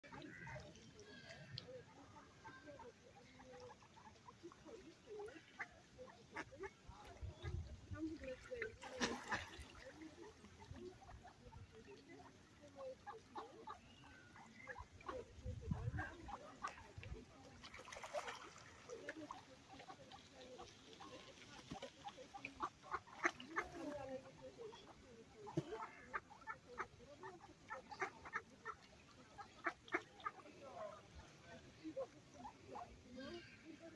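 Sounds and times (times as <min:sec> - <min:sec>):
ducks quacking: 0:00.0 - 0:31.1.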